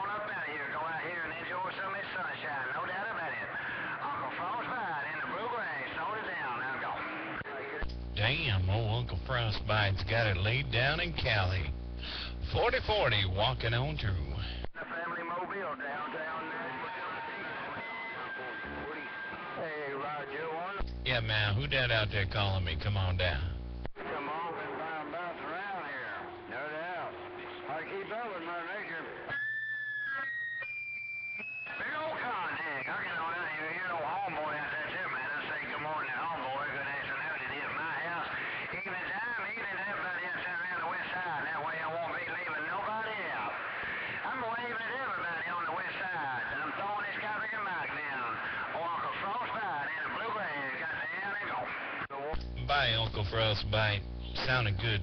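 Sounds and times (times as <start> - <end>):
voice over radio speaker: 0.0 - 29.3, 31.7 - 55.0.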